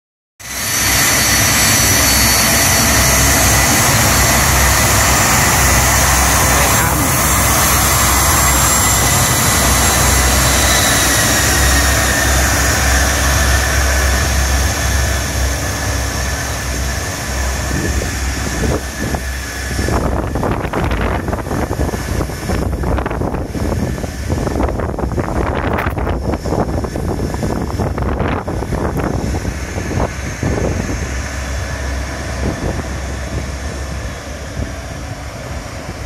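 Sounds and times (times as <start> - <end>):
jet engines whining and rumbling: 0.4 - 36.0.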